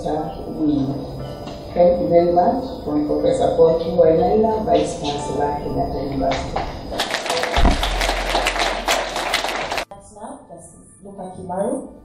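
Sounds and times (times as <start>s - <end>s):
audience applauding: 7.0s - 9.9s
low thump: 7.6s - 8.5s.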